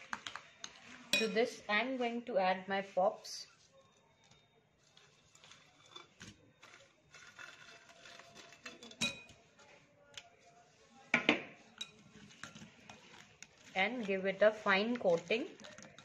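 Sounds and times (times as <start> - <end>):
metal spoon clinking on glass bowl: 1.1 - 1.4, 8.6 - 9.4.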